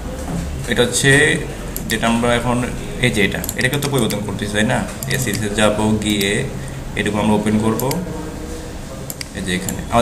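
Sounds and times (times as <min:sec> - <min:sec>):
man talking: 0:00.6 - 0:08.0, 0:09.3 - 0:10.0.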